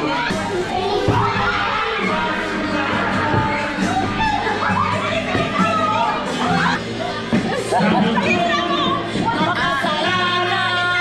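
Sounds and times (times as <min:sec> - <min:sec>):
background music: 0:00.0 - 0:11.0
children playing: 0:00.0 - 0:11.0
crowd talking: 0:00.0 - 0:11.0.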